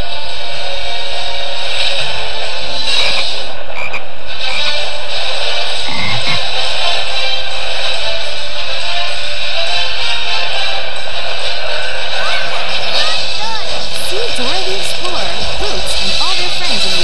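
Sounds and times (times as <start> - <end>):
overlapping soundtracks: 0.0 - 17.0
cartoon frogs croaking: 2.9 - 4.8, 5.9 - 6.6.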